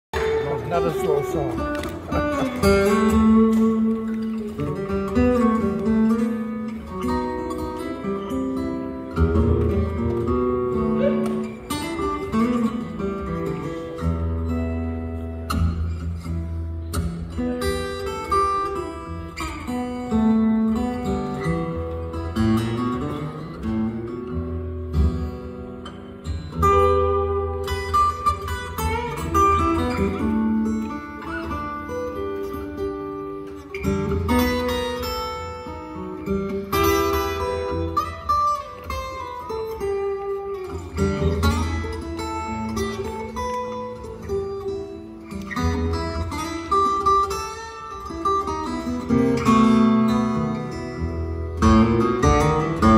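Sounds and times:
acoustic guitar picking melody: 0.2s - 52.9s.

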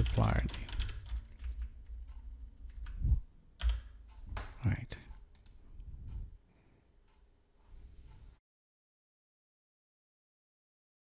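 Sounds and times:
keyboard keystrokes: 0.0s - 1.8s, 3.6s - 4.0s.

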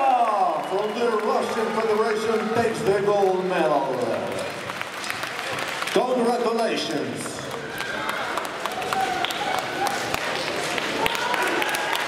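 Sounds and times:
spectators applauding: 0.0s - 12.0s.

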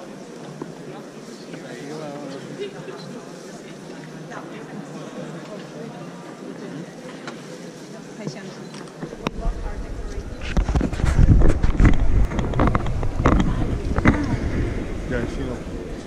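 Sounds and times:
people's voices in background: 0.0s - 16.0s
wind on microphone: 9.2s - 16.0s
camera handling rumble: 10.2s - 14.8s.

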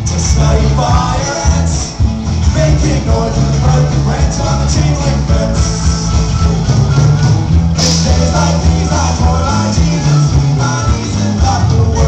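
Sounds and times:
man singing: 0.0s - 6.8s, 7.8s - 12.0s
live rock band playing: 0.0s - 12.0s.

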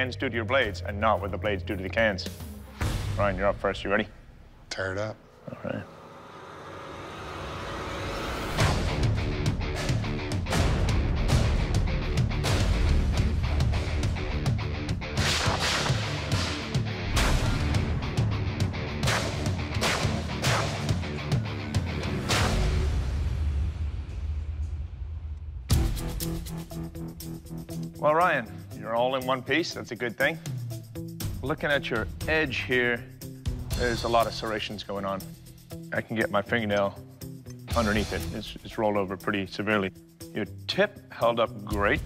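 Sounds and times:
dramatic background music: 0.0s - 4.5s, 5.4s - 42.0s.

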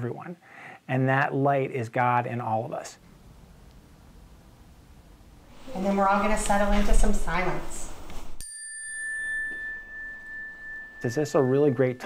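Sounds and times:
chime bar ringing: 8.4s - 12.0s.

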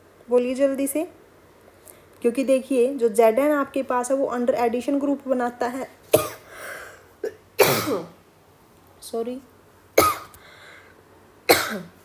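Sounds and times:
person coughing: 6.2s - 6.5s, 7.2s - 8.1s, 10.0s - 10.3s, 11.5s - 12.0s.

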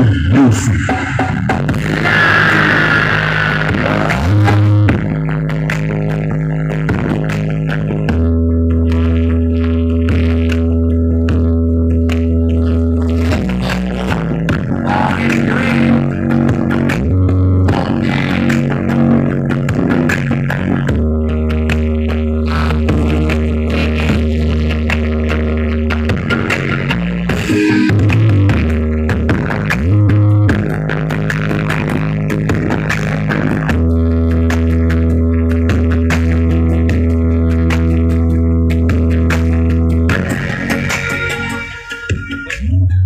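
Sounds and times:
loud bass-heavy music: 0.0s - 43.0s.

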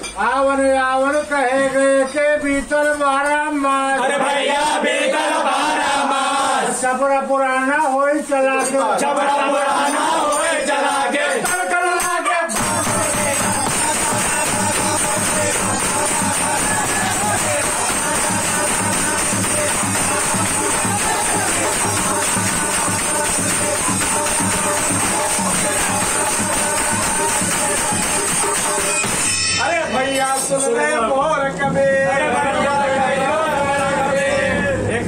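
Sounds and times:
men singing: 8.6s - 28.8s, 30.0s - 35.0s
brass hand cymbals clashing: 11.4s - 30.7s
hand drums: 12.5s - 29.8s.

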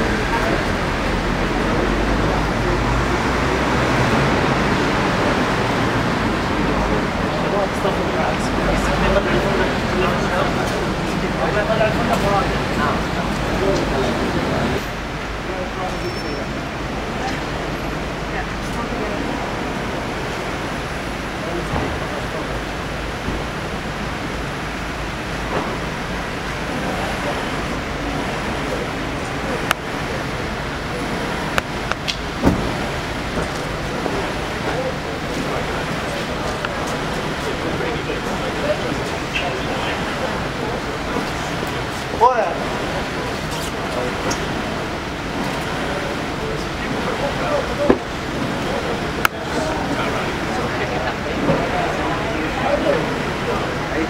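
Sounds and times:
street traffic passing cars: 0.0s - 54.0s.

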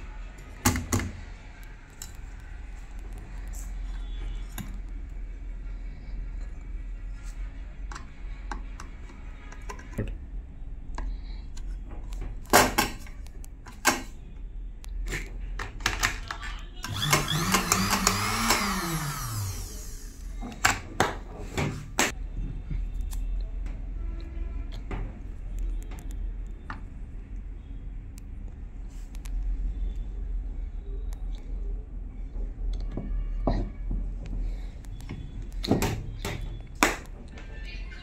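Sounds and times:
sewing machine motor whine: 16.8s - 20.2s.

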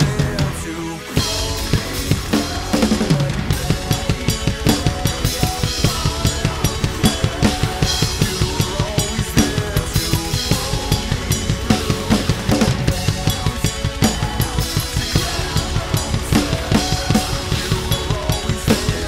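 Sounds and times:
drum kit playing rock beat: 0.0s - 19.0s
instrumental recorded song: 0.0s - 19.0s.

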